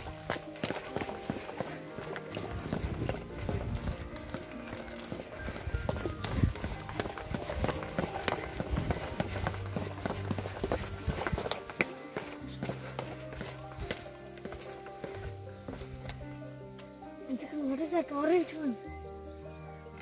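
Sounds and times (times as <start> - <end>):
footsteps on concrete stairs: 0.0 - 17.2
background music with held notes: 0.0 - 20.0.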